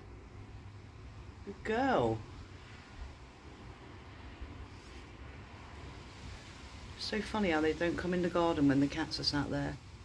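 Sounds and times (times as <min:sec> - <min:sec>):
faint low rumble with hiss: 0:00.0 - 0:10.0.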